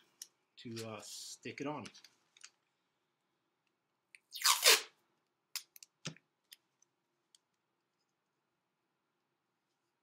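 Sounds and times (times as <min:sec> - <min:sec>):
masking tape ripping: 0:04.3 - 0:05.0.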